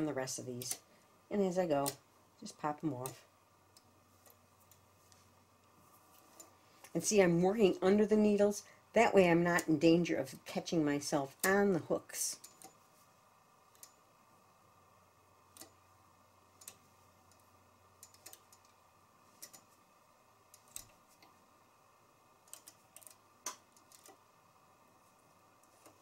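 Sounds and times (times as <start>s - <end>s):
knitting machine needles clicking: 0.0s - 0.9s, 1.5s - 4.9s, 6.1s - 6.6s, 9.4s - 12.8s, 13.6s - 14.0s, 15.5s - 15.8s, 16.5s - 21.4s, 22.3s - 24.3s, 25.5s - 26.0s.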